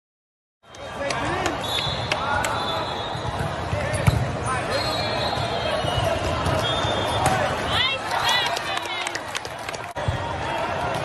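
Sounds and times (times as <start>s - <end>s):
many voices echoing in a hall: 0.7s - 11.0s.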